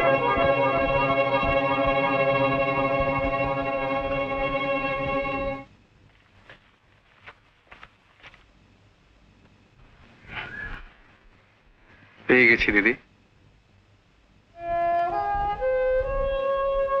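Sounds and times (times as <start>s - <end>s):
film score sustained chord: 0.0s - 5.7s.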